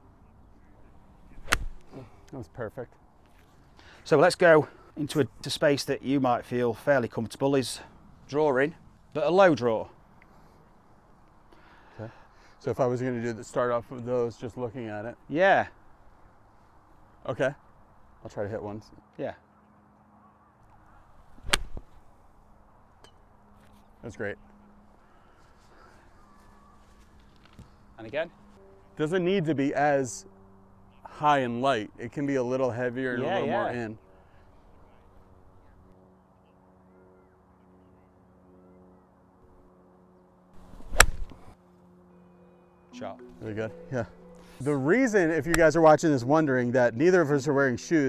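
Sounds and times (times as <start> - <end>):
golf club swish: 1.3 - 1.9, 21.3 - 22.0, 40.6 - 41.5
golf club striking ball: 1.4 - 1.9, 21.4 - 21.9, 40.7 - 41.4.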